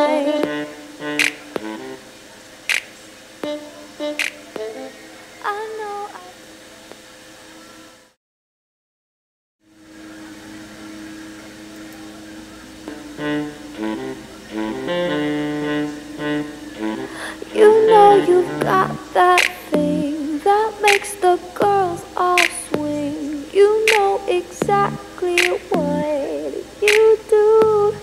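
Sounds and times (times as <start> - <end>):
woman singing: 0.0 - 0.9, 4.6 - 6.4, 17.1 - 28.0
pop song from small speaker: 0.0 - 2.0, 2.7 - 6.4, 12.9 - 28.0
held synth tones: 12.9 - 20.4, 24.6 - 26.6
beat: 17.7 - 20.2, 21.6 - 26.2, 26.9 - 28.0.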